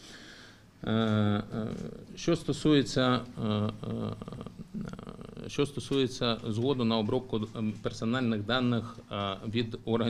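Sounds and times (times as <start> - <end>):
man speaking: 0.8 - 10.0.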